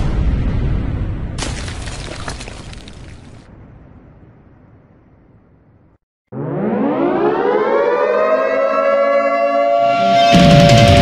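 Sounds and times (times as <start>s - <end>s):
siren winding up: 6.3s - 11.0s.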